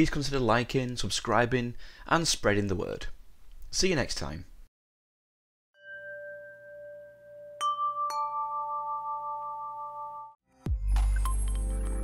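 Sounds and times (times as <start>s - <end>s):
bell-like notes ringing: 5.8s - 10.4s, 11.2s - 12.0s
soft held chime tone: 5.8s - 10.4s.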